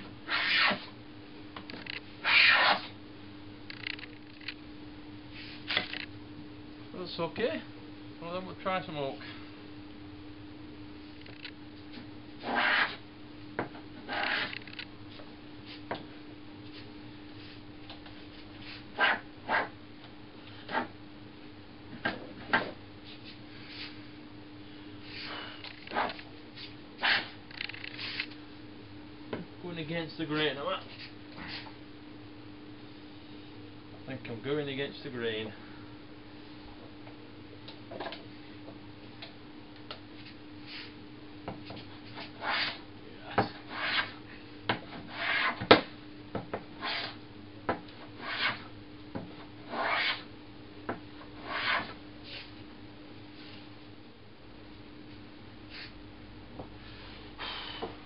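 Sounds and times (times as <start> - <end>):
plane scraping: 0.3 - 0.9, 2.2 - 2.9, 12.4 - 13.0, 14.0 - 14.6, 25.1 - 28.3, 42.0 - 42.8, 43.4 - 44.2, 44.9 - 45.6, 46.8 - 47.2, 48.2 - 48.7, 49.6 - 50.3, 51.3 - 52.5
plane shaving wood: 42.2 - 42.8, 43.5 - 44.2, 45.0 - 45.6, 46.8 - 47.2, 48.2 - 48.7, 49.7 - 50.2, 51.4 - 51.9.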